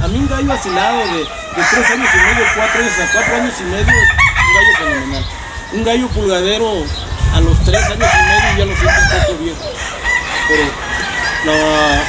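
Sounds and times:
roosters crowing: 0.0 - 12.0.

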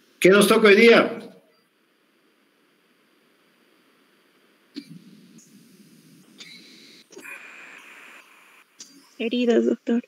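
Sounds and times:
faint breath-like hiss: 4.8 - 9.2.

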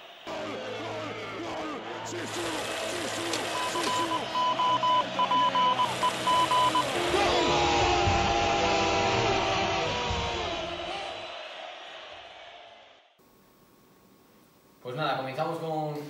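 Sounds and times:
crowd noise: 0.0 - 12.9
broadcast voices: 0.3 - 7.9
voice: 14.8 - 16.0.

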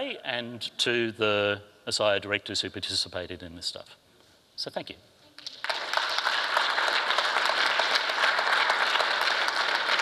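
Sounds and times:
audience applauding: 5.4 - 10.0.

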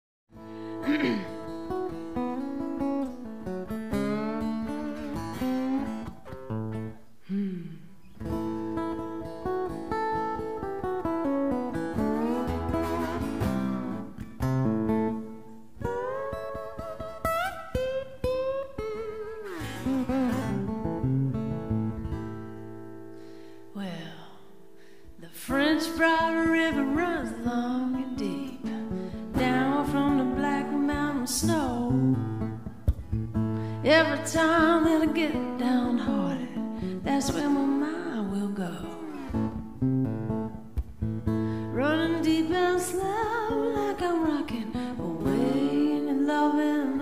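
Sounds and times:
acoustic guitar playing: 0.3 - 47.0
woman singing: 23.7 - 24.6, 25.2 - 32.8, 33.8 - 39.5, 41.6 - 47.0.

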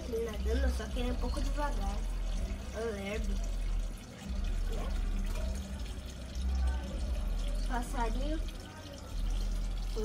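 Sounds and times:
water trickling into pond: 0.0 - 10.0.

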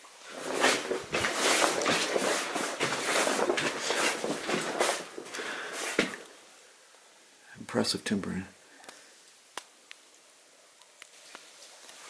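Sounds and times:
footsteps on gravel: 0.3 - 6.2.

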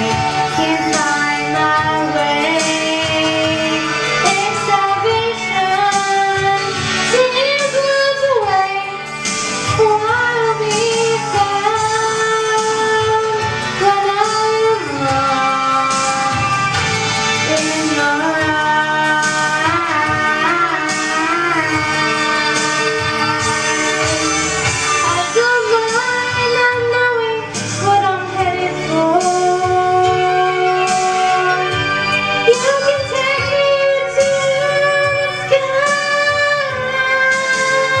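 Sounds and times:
young woman singing: 0.0 - 16.8, 17.4 - 38.0
instrumental backing track: 0.0 - 38.0.

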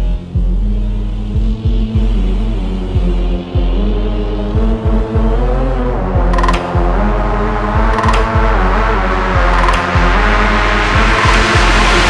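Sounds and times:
heavy sub-bass: 0.0 - 12.0
noise sweep: 0.0 - 12.0.

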